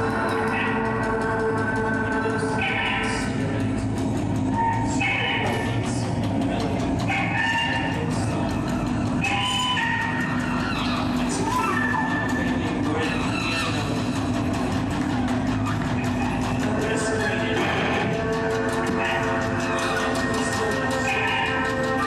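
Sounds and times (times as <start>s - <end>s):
band playing droning psychedelic music: 0.0s - 22.0s.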